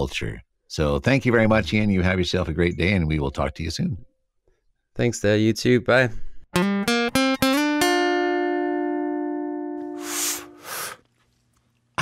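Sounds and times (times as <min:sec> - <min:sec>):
plucked guitar notes: 0:06.5 - 0:10.6
breathy hiss: 0:09.9 - 0:11.1.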